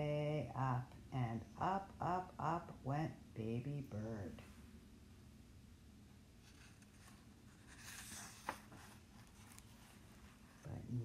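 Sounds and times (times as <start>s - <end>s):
paper page rustling: 6.4s - 10.7s.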